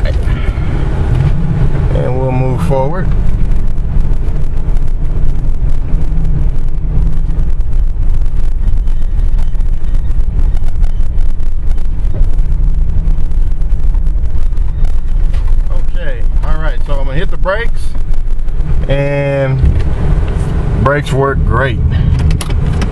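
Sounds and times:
engine and road rumble: 0.0 - 22.9.

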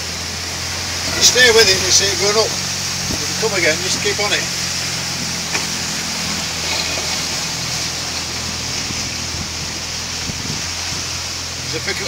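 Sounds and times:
water rushing past hull: 0.0 - 12.0
wind rushing: 7.2 - 11.2.

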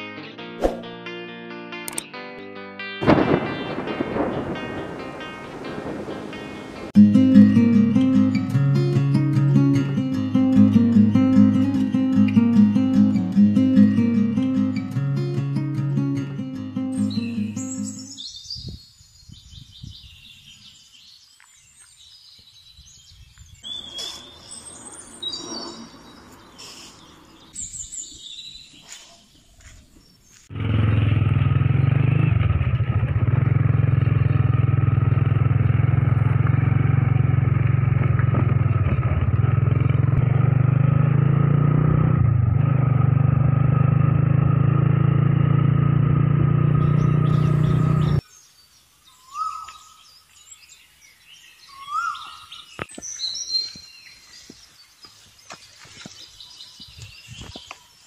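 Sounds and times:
birds chirping: 16.1 - 30.5, 46.5 - 58.0
small motorcycle engine running: 30.5 - 48.2.

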